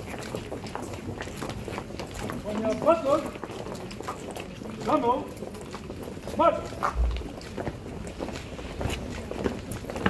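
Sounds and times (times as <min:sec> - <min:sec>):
footsteps on paving stones: 0:00.0 - 0:10.0.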